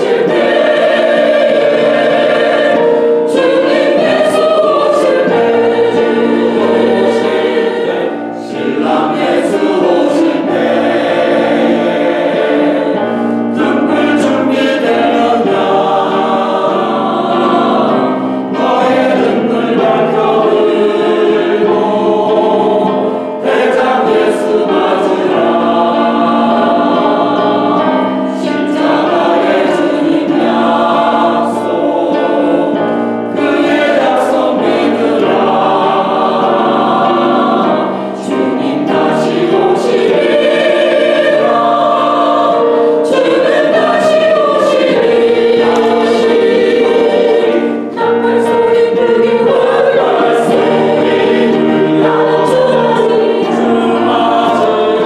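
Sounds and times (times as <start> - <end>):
choir singing a hymn: 0.0 - 55.0.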